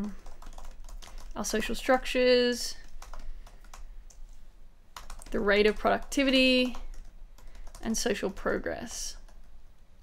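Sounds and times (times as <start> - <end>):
keyboard typing: 0.0 - 1.7, 2.8 - 4.2, 5.0 - 9.6.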